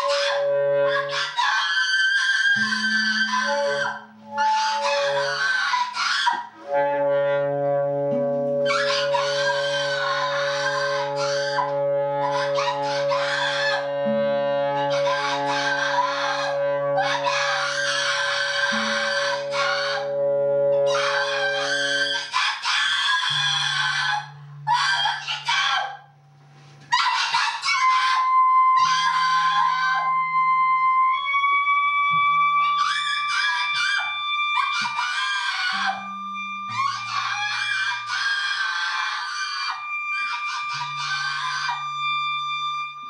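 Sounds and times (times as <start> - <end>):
thin high sustained tone: 2.6 - 5.8, 6.6 - 22.4
low drone tones: 6.6 - 22.3.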